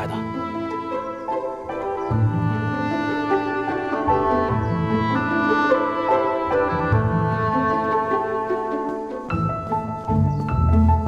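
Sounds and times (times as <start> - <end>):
bowed string film score: 0.0 - 11.0.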